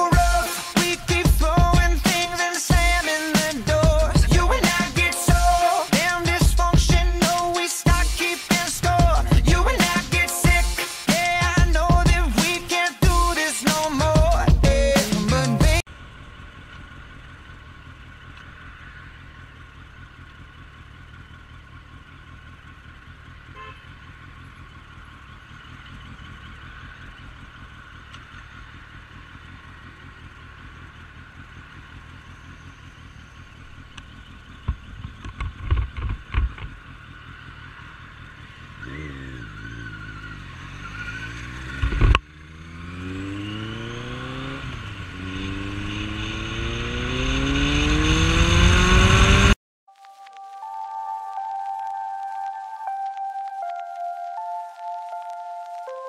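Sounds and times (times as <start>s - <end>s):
motorcycle engine accelerating: 0.0s - 49.6s.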